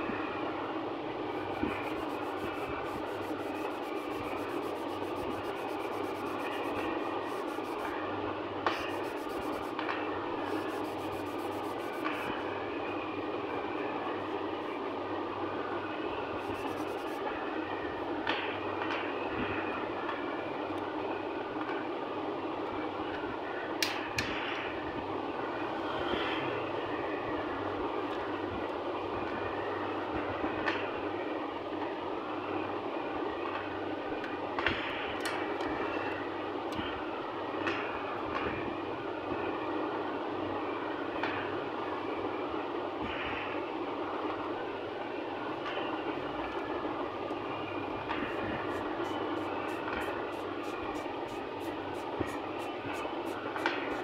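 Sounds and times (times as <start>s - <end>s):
steady rushing noise: 0.0s - 22.5s, 43.0s - 54.0s.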